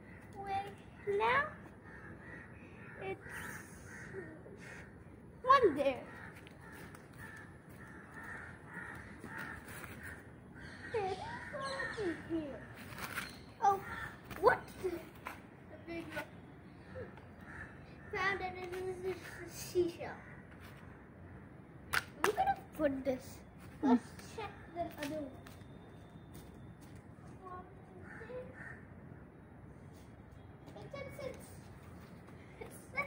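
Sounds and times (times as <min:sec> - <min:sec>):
crows cawing: 0:00.0 - 0:14.6, 0:16.8 - 0:21.6, 0:27.9 - 0:29.2.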